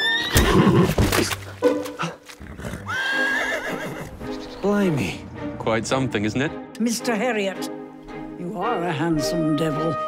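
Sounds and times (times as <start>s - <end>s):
horse neighing: 0.0s - 1.0s, 2.5s - 4.4s
background music: 0.0s - 10.0s.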